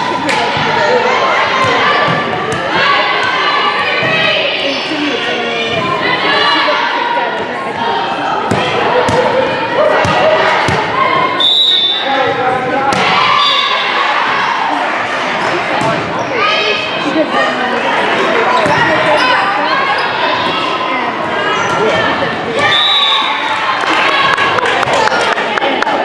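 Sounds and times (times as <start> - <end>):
players and spectators voices: 0.0 - 26.0
referee's whistle: 11.4 - 12.2, 22.6 - 23.4
volleyball hits and thuds: 12.9 - 13.3.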